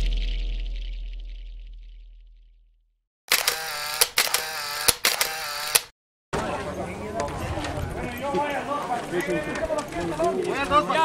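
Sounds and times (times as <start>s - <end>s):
deep booming intro sound effect: 0.0s - 2.9s
camera shutter clicks: 3.3s - 5.9s.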